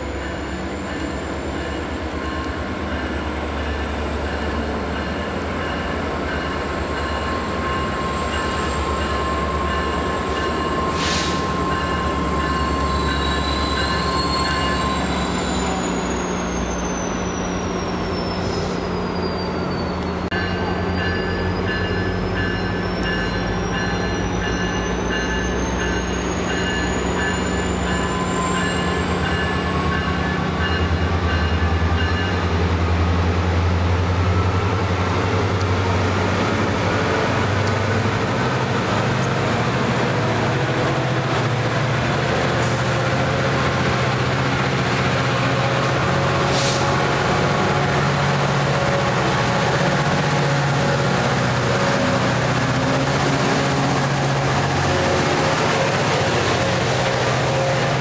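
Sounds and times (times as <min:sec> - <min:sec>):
diesel locomotive engine hum: 0:00.0 - 0:58.0.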